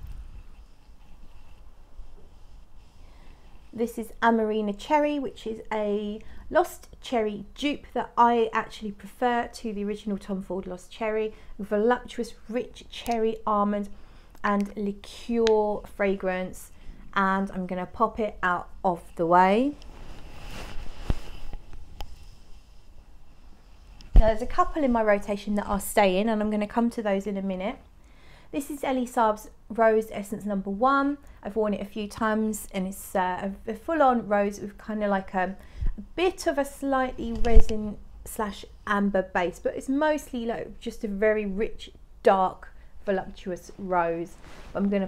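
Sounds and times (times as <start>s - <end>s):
rustling of handling: 19.7s - 24.8s
person shifting in chair: 19.8s - 22.4s.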